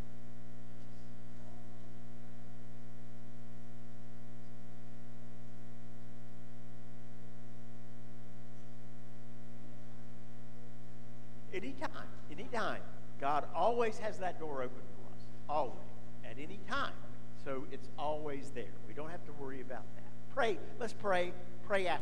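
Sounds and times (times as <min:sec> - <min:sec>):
electrical hum: 0:00.0 - 0:22.0.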